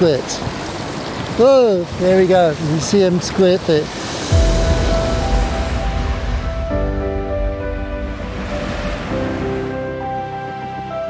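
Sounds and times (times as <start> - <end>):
sea water washing on shore: 0.0 - 10.9
low rumble: 3.8 - 10.0
background music of held chords: 4.0 - 11.0.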